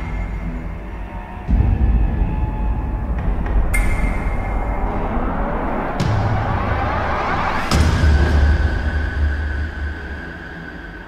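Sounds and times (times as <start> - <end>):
deep steady rumble: 0.0 - 10.7.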